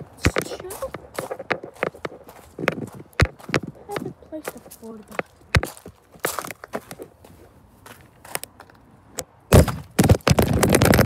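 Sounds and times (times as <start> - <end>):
phone handling knocks and rubbing: 0.2 - 4.1.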